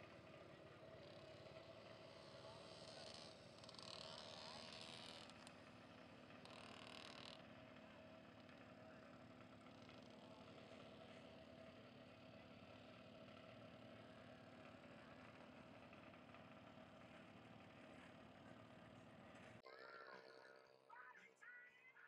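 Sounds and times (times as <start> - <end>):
faint engine hum: 0.0 - 21.1.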